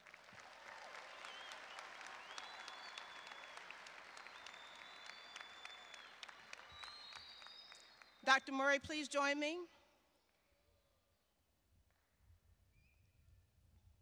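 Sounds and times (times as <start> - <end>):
cheers: 0.0 - 8.2
audience applauding: 0.0 - 8.5
high whistles: 1.1 - 8.2.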